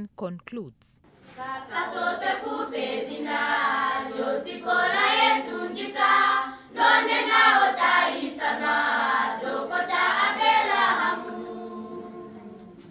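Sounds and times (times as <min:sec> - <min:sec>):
girls singing in chorus: 0:01.3 - 0:12.9.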